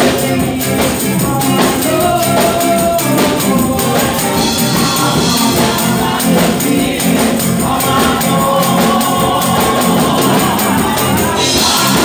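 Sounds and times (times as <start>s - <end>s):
band accompaniment: 0.0s - 12.0s
fast high percussion beat: 0.0s - 12.0s
women singing gospel: 0.0s - 12.0s.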